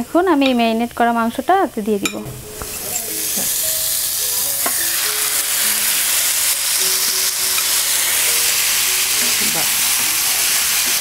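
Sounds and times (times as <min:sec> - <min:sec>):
meat sizzling in hot oil: 0:00.8 - 0:11.0.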